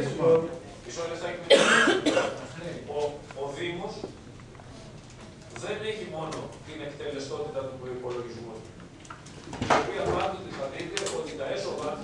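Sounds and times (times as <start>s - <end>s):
person coughing: 1.5s - 2.4s.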